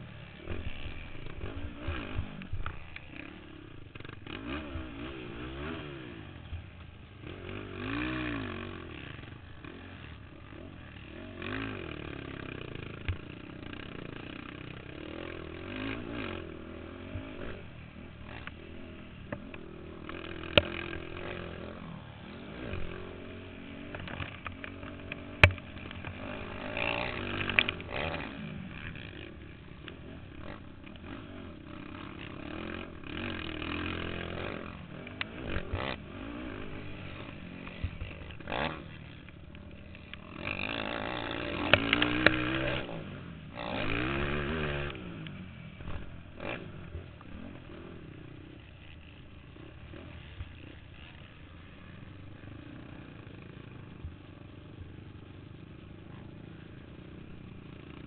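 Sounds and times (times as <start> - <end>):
atv engine revving: 0.0 - 58.0.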